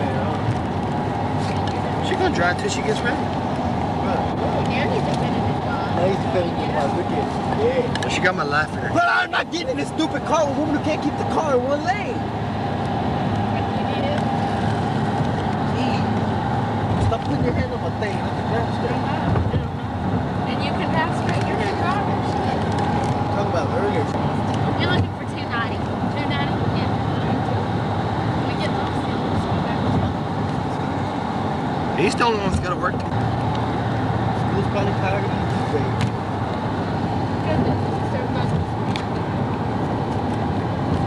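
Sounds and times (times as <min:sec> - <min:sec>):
road and engine noise inside car: 0:00.0 - 0:41.0.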